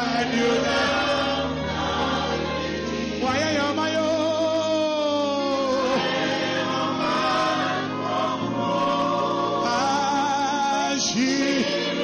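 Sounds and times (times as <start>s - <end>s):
choir singing: 0.0s - 4.1s, 5.6s - 12.0s
musical backing: 0.0s - 12.0s.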